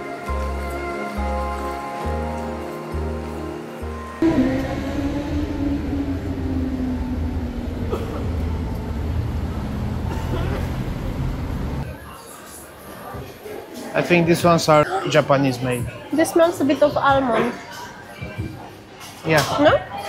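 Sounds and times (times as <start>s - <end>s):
passers-by: 3.9s - 11.9s
loud low rumble: 4.2s - 11.8s
traffic: 4.2s - 12.0s.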